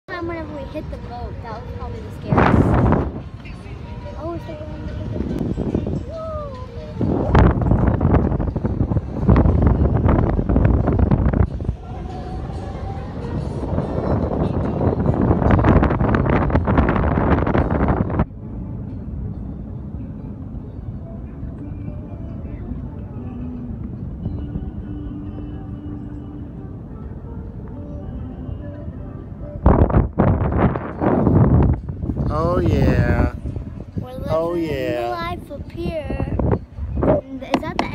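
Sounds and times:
wind buffeting microphone: 0.1s - 37.9s.

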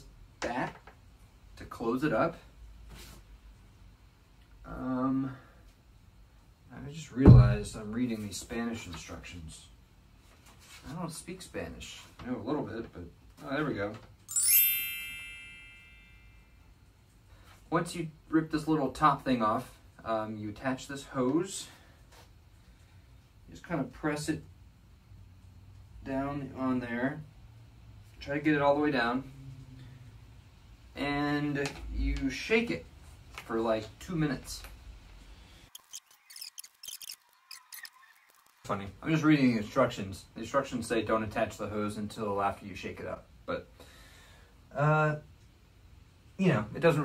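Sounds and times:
bell-like ding: 14.3s - 16.6s.

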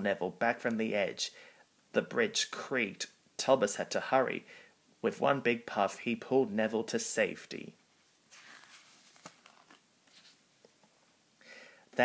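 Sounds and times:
faint rustle: 8.0s - 10.6s.

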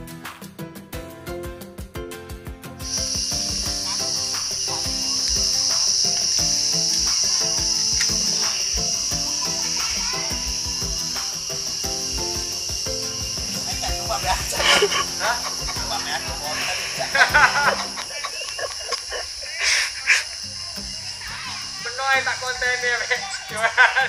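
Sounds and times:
background music: 0.0s - 24.0s
high-pitched insect drone: 2.8s - 24.0s.

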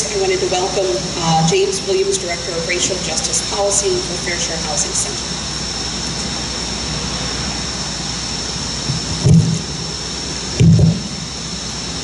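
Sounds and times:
outdoor background noise: 0.0s - 12.0s
dull thumps on microphone: 8.9s - 9.6s, 10.6s - 11.0s.

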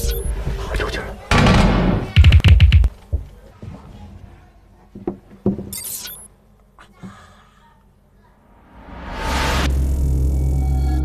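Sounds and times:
loud swoosh: 8.4s - 11.0s.

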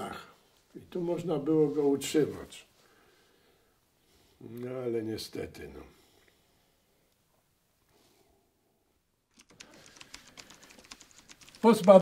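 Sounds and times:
faint irregular clicks: 9.3s - 12.0s.

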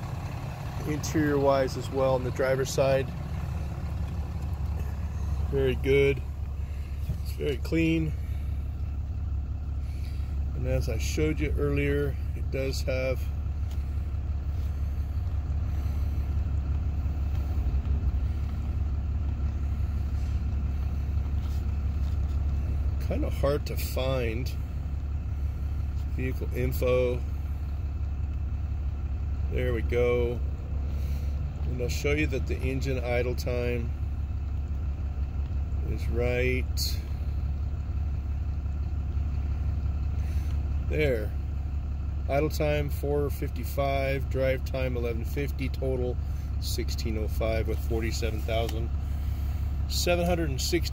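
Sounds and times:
truck engine idling: 0.0s - 50.9s.

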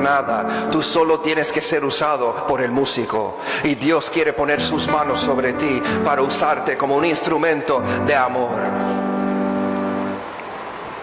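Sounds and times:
sustained keyboard chord: 4.6s - 10.3s.

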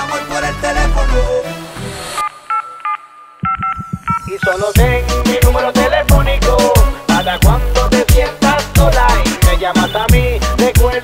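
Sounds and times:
telephone keypad tones: 2.2s - 4.7s
pulsing bass beat: 3.4s - 11.0s.

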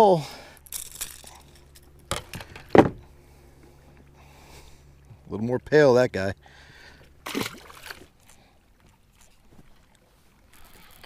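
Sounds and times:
metal hooks clinking: 0.6s - 2.7s.

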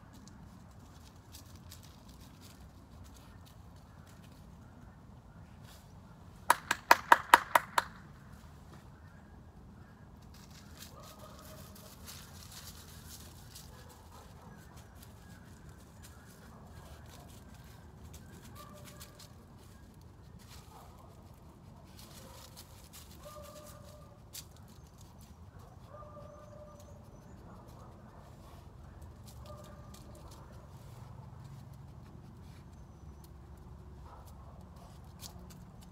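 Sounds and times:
dry leaves crackling and rustling: 0.0s - 4.6s, 10.2s - 26.8s, 28.3s - 31.7s
sharp hand claps: 6.5s - 8.0s.

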